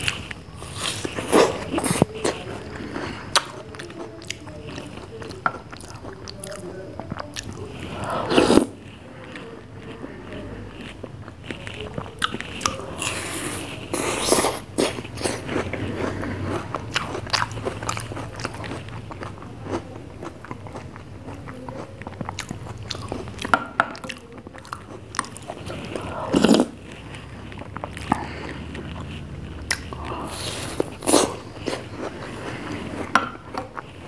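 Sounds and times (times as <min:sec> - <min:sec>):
wet bites and chewing: 0:13.9 - 0:33.9.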